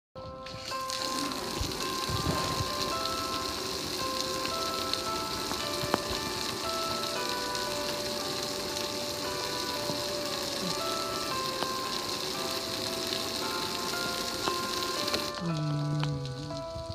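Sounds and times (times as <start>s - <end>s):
simple electronic melody: 0.2s - 16.9s
water spraying onto grill: 0.5s - 16.9s.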